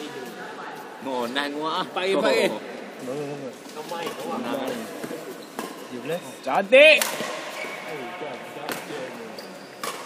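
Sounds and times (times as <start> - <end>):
rackets striking shuttlecock: 6.9 - 7.8, 8.7 - 9.0, 9.7 - 10.0.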